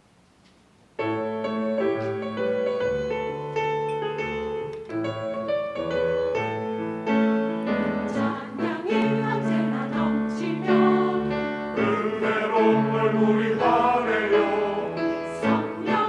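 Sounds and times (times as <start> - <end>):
grand piano playing: 1.0 - 16.0
mixed choir singing: 7.6 - 16.0.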